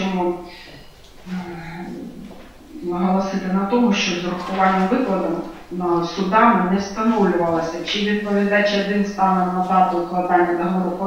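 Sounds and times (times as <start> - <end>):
person speaking: 1.2 - 11.0.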